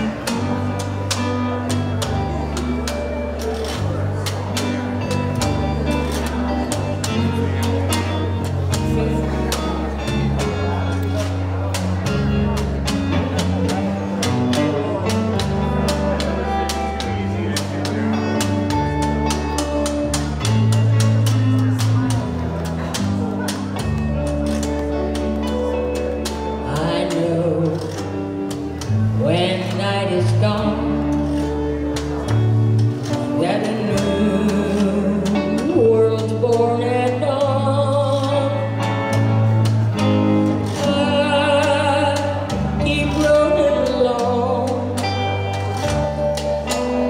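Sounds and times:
acoustic guitar: 0.0 - 47.0
electric bass: 0.0 - 47.0.

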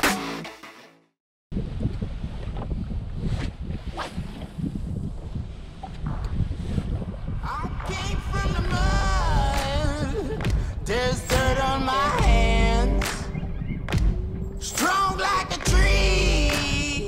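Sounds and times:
wind buffeting microphone: 1.5 - 17.0
music with singing: 7.4 - 17.0.

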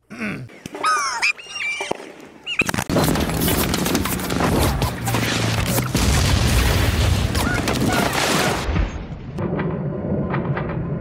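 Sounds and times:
person clearing throat: 0.0 - 0.5
gunfire and battle noise: 2.9 - 11.0.

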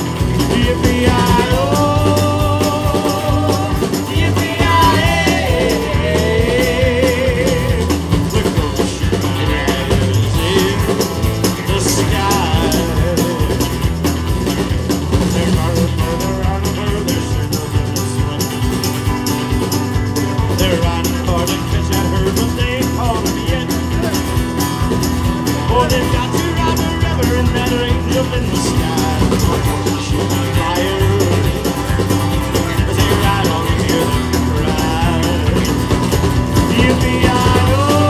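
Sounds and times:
live country-rock band: 0.0 - 38.0.

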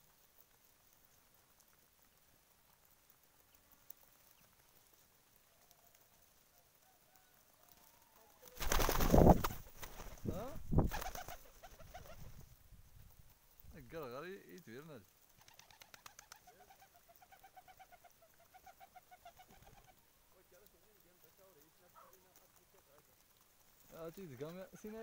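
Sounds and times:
wings fluttering: 0.0 - 25.0
pigeons cooing: 15.4 - 20.0.

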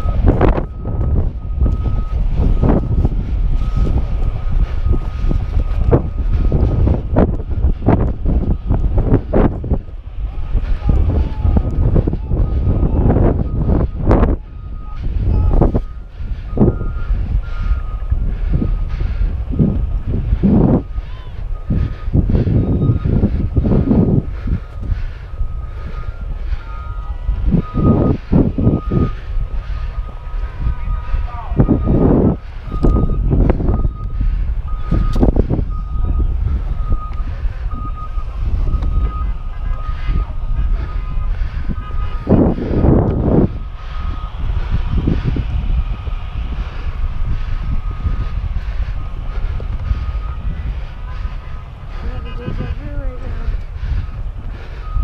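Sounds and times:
reversing alarm beeping: 0.0 - 55.0
wind buffeting microphone: 0.0 - 55.0.

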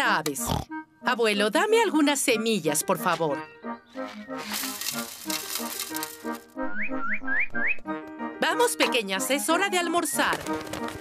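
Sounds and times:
soft background music: 0.0 - 11.0
seed pouring rattling hiss: 4.4 - 6.4.

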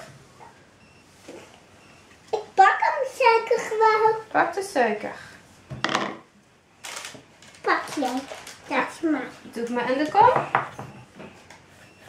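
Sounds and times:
bowl knocking on wooden table: 5.7 - 6.2.

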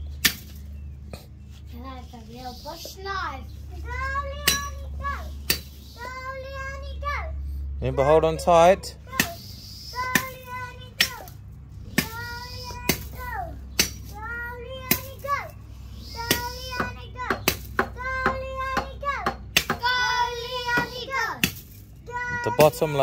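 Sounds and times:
machete chopping tree trunk: 0.2 - 0.7, 9.1 - 9.4, 12.8 - 14.2, 16.3 - 18.0, 19.2 - 20.0
child calling in sing-song: 2.6 - 7.4, 12.0 - 21.4.

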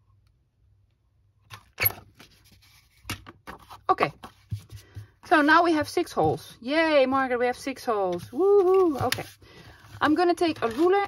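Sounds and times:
paper handling: 8.1 - 11.0.

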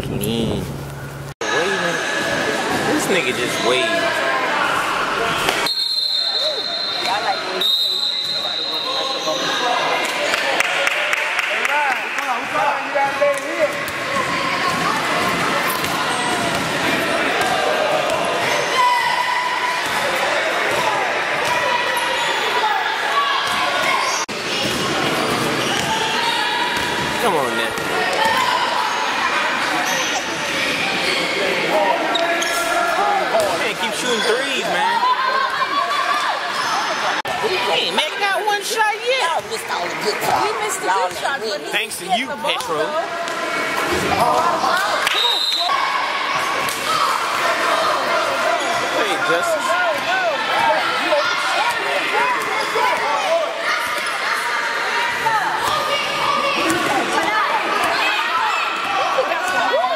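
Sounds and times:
players and spectators calling out: 1.4 - 59.9
sneakers squeaking: 5.2 - 10.0, 13.7 - 31.4, 32.0 - 34.8, 35.4 - 37.9, 48.3 - 49.2.

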